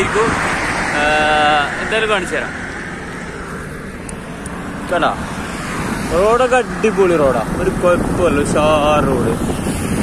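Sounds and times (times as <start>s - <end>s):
highway traffic noise: 0.0s - 10.0s
wind rushing: 0.0s - 10.0s.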